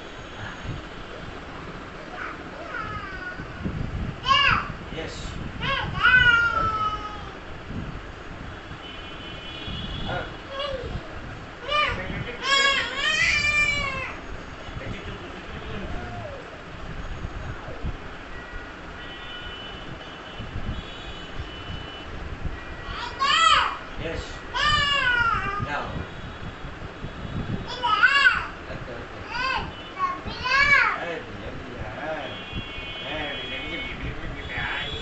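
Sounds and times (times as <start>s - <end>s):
child squealing: 5.6s - 7.4s, 11.6s - 14.2s, 22.9s - 23.8s, 24.5s - 25.7s, 27.7s - 28.6s.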